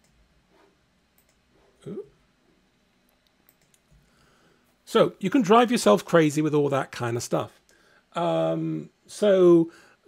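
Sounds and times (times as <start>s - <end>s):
computer keys typing: 1.1s - 1.4s, 3.2s - 4.0s
man saying ooh: 1.8s - 2.2s.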